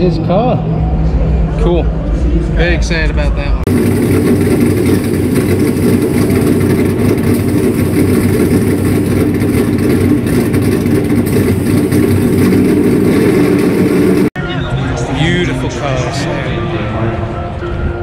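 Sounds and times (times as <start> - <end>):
race car engine running: 3.7 - 14.4.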